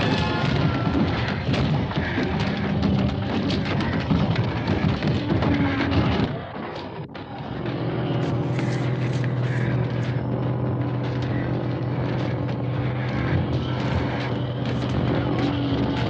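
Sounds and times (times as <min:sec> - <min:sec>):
low engine drone: 0:00.0 - 0:16.0.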